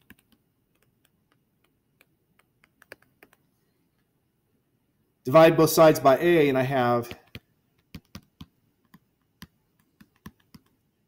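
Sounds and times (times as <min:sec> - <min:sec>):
stylus tapping on tablet screen: 0:00.0 - 0:04.1, 0:07.1 - 0:11.0.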